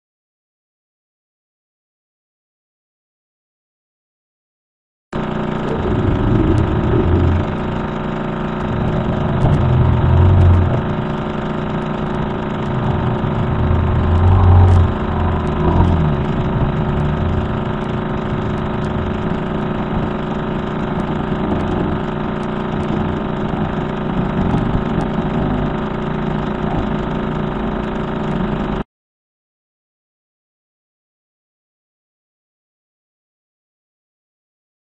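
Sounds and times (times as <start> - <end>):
dense steady drone of tones: 5.3 - 28.8.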